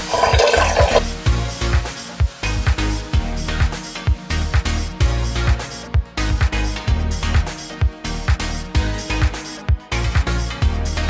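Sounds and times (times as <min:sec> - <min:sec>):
tap water pouring into metal pot: 0:00.0 - 0:01.2.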